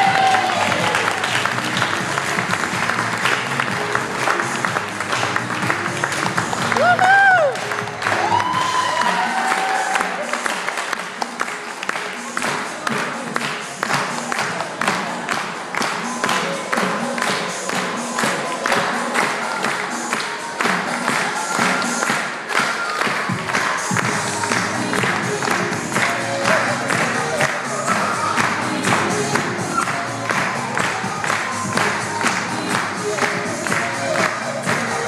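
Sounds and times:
audience cheering and whooping: 0:00.0 - 0:01.4, 0:06.7 - 0:10.3
audience clapping along: 0:00.0 - 0:35.0
lively music with steady beat: 0:00.0 - 0:35.0.

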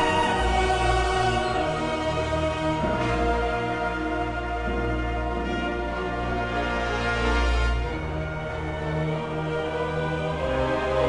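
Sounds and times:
orchestra and choir performing: 0:00.0 - 0:11.0.

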